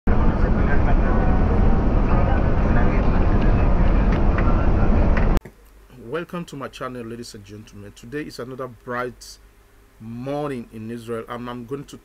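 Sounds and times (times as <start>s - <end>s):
bus engine and road rumble: 0.1s - 5.4s.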